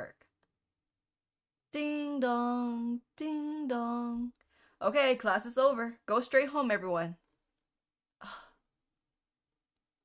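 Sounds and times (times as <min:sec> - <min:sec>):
woman sighing: 0:08.2 - 0:08.6.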